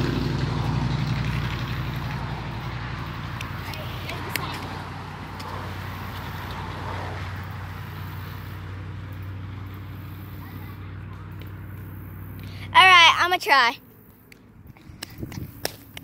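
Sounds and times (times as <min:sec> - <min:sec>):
skateboard wheels rolling on concrete: 0:00.0 - 0:16.0.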